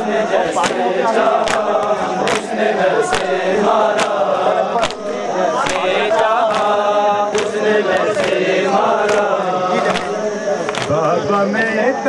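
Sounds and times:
men chanting in unison: 0.0 - 12.0.

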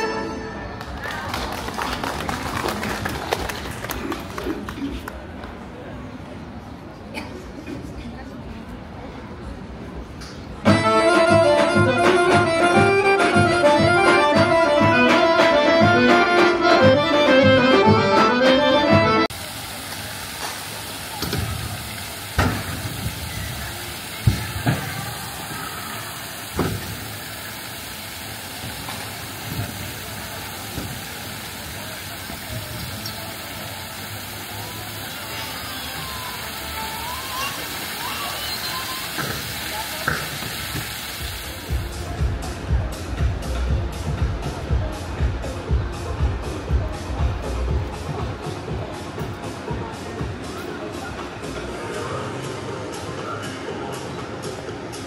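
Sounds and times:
accordion music: 0.0 - 0.8, 10.7 - 19.3
faint voices: 0.0 - 55.0
fountain water rushing: 0.8 - 5.3, 19.3 - 42.3
music with a beat: 10.7 - 19.3, 41.7 - 50.6.

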